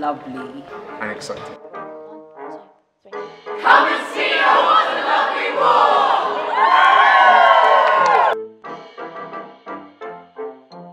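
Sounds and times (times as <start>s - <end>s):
young voices cheering and whooping: 6.1s - 8.4s.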